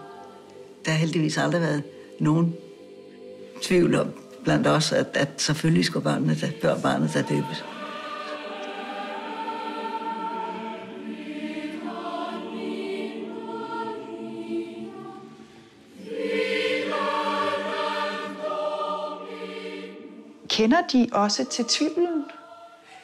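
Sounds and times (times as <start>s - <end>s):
choir singing a hymn: 0.0s - 23.0s.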